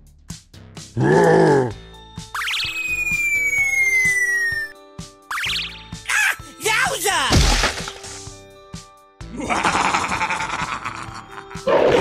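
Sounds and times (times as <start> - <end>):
background music: 0.0 - 12.0
cartoon falling whistle: 2.4 - 5.8.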